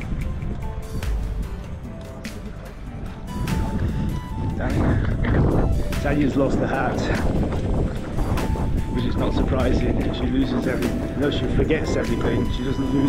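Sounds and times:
background music with held notes: 0.0 - 13.0
wind rumbling on microphone: 0.0 - 13.0
voices: 4.6 - 13.0.

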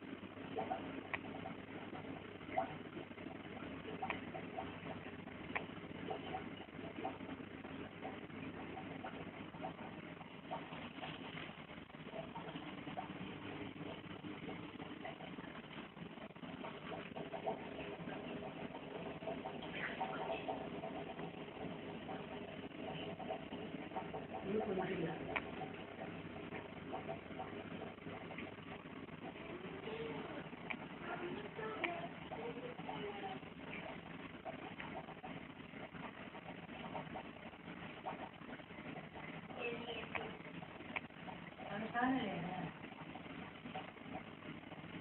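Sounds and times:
scattered clicks: 5.5 - 5.8.

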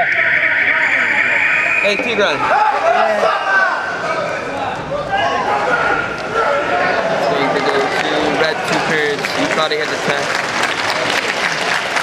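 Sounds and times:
men talking: 0.0 - 11.7
sports hall background noise: 0.0 - 12.0.

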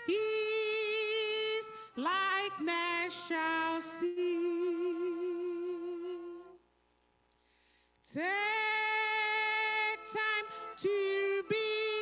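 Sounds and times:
person singing hymn: 0.0 - 6.6, 8.1 - 12.0.

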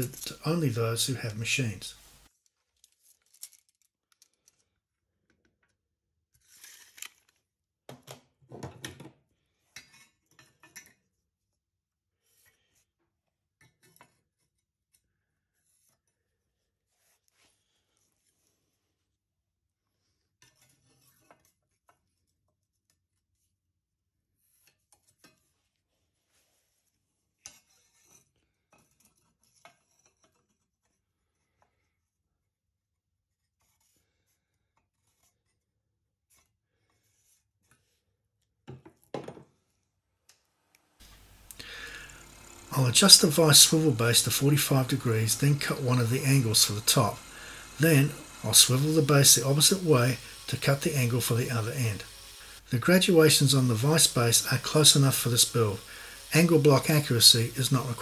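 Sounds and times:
marker pen drawing on steel: 14.1 - 19.1, 20.1 - 23.6, 24.4 - 28.2, 33.3 - 35.7, 36.3 - 38.1.

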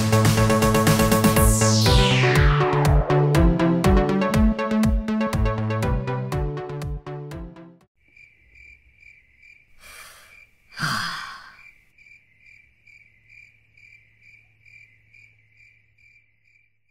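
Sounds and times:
crickets chirping: 8.0 - 16.9
person breathing in: 9.8 - 11.7
person sighing: 9.8 - 11.7.

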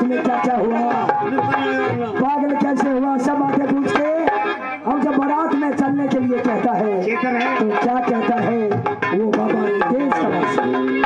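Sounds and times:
dholak drum strokes: 0.0 - 11.0
harmonium: 0.0 - 11.0
man singing into a microphone: 0.0 - 11.0.

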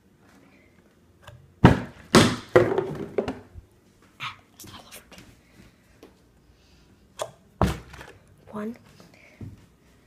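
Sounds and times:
plastic bottle thunking down: 1.6 - 3.5.

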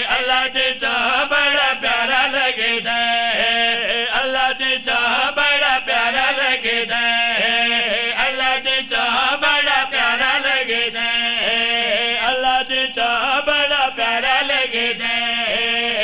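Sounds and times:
men chanting in unison: 0.0 - 16.0.

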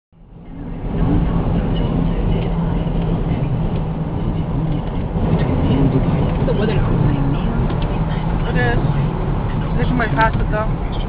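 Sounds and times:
road and engine noise in car: 0.2 - 11.0.

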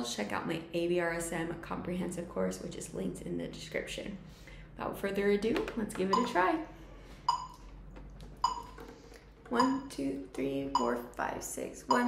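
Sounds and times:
metronome beeping: 6.1 - 6.4, 7.3 - 7.6, 8.4 - 8.8, 9.5 - 10.0, 10.6 - 11.1.

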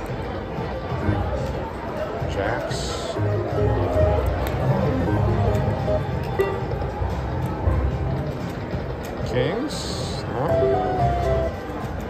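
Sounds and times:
casino background noise: 0.0 - 12.0
slot machine electronic music: 3.2 - 7.4, 10.3 - 11.6.

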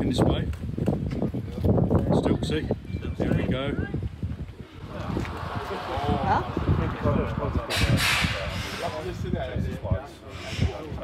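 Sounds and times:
men talking: 1.6 - 11.0
burst of hiss: 7.7 - 9.0.

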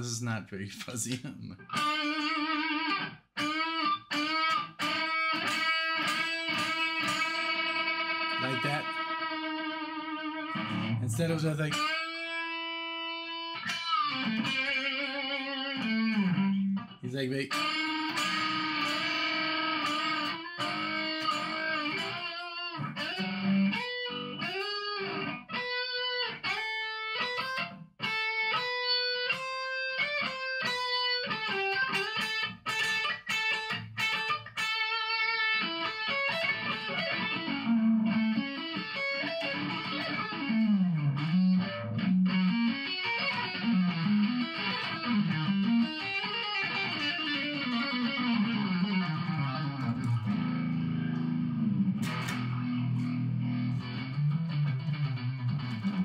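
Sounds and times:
electric guitar playing solo: 1.6 - 56.0.

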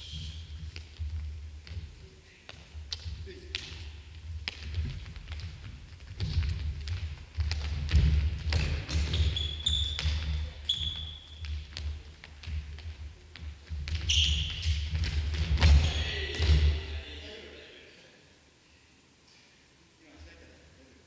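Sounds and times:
sneaker squeaks: 0.0 - 1.1, 8.0 - 12.1, 13.9 - 17.1
footsteps: 0.0 - 17.0.

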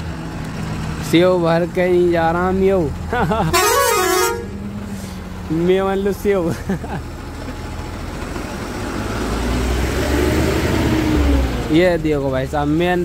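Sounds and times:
road noise: 0.0 - 13.0
truck engine rumble: 0.0 - 13.0
truck horn blast: 3.5 - 4.8.

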